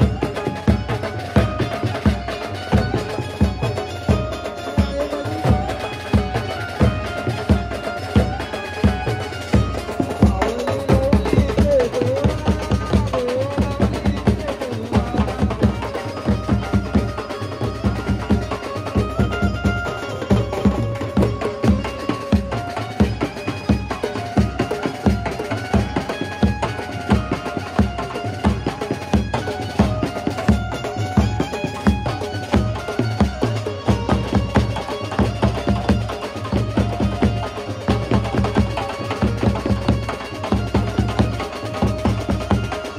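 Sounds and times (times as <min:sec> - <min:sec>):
banjo melody: 0:00.0 - 0:42.9
drums beating a driving rhythm: 0:00.0 - 0:42.9.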